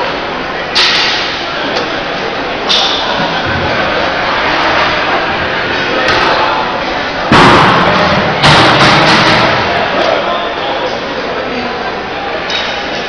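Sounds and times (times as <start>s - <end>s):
crowd voices and commotion: 0.0s - 13.0s
loud bangs ringing in a hall: 7.2s - 10.2s.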